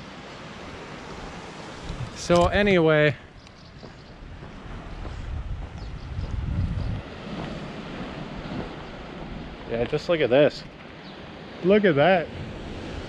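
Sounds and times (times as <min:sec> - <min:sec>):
steady outdoor hiss: 0:00.0 - 0:13.0
wind buffeting microphone: 0:01.1 - 0:11.5.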